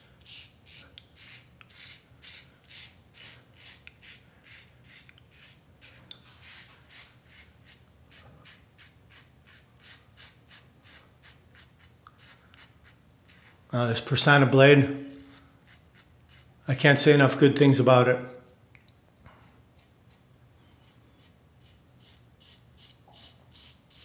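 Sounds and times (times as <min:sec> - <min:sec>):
razor scratching through stubble: 0:00.2 - 0:13.6, 0:15.0 - 0:16.5, 0:20.8 - 0:24.0.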